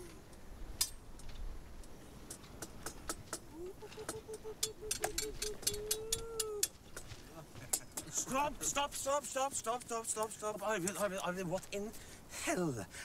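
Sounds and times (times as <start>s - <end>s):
wooden swords clacking: 2.4s - 6.8s
person calling out: 3.5s - 6.7s.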